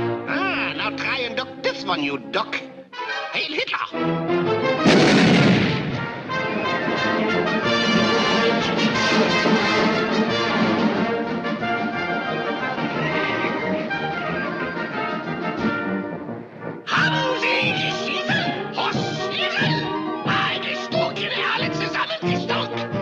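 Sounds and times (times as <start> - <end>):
orchestral cartoon music with brass: 0.0 - 23.0
loud bang: 4.8 - 7.3.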